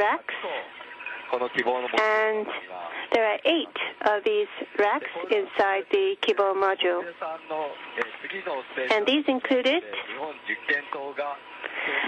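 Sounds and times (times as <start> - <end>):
man talking: 1.3 - 2.0, 9.8 - 11.5.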